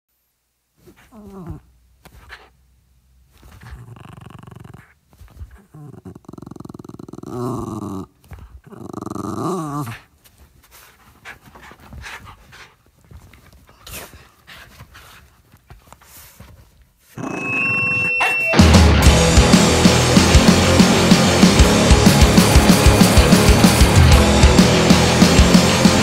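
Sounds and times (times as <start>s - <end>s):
dog growling: 0.8s - 2.5s, 3.3s - 10.2s, 17.1s - 18.5s
loud steady high tone: 17.2s - 20.0s.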